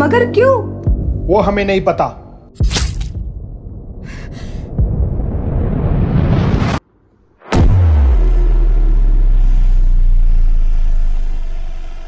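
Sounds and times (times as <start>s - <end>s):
low dramatic drone: 3.2s - 12.0s
woman gasping in fear: 4.0s - 4.7s
deep hit with falling sweep: 7.4s - 12.0s.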